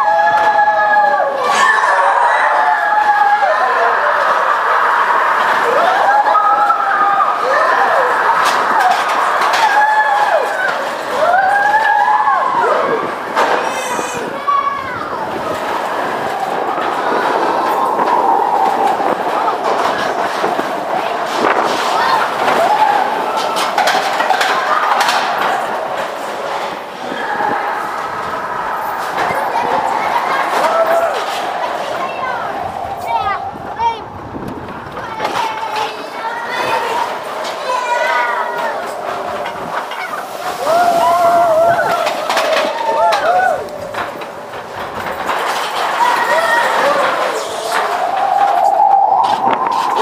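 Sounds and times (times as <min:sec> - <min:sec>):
bobsled rattling on steel track: 0:00.0 - 0:50.0
riders screaming and whooping: 0:00.0 - 0:50.0
roller coaster rolling rumble: 0:00.0 - 0:50.0.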